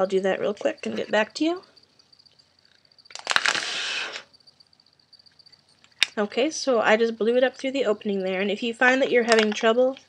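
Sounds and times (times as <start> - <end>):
paper crackling: 3.1 - 4.2
breath blown into paper: 3.4 - 4.3.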